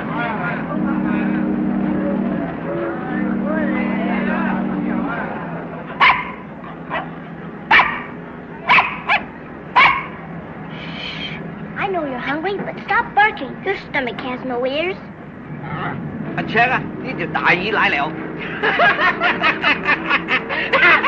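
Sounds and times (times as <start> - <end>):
steady low drone: 0.0 - 8.7
voices calling: 0.0 - 21.0
puppy yapping: 6.0 - 8.1, 8.7 - 10.2.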